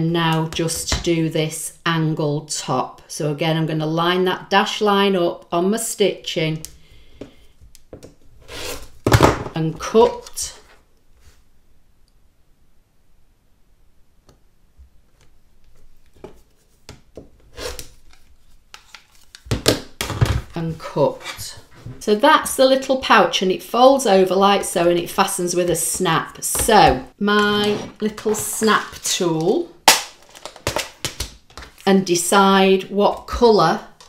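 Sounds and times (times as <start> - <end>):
cutter and ruler scraping on mat: 27.4 - 28.5
plastic crinkling: 29.8 - 31.9.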